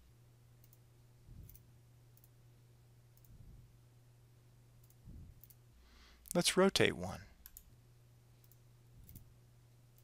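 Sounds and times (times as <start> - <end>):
faint low hum: 0.0 - 10.0
computer mouse clicks: 0.6 - 0.8, 1.4 - 2.4, 3.1 - 3.4, 4.8 - 5.6, 7.4 - 7.7, 8.4 - 9.3.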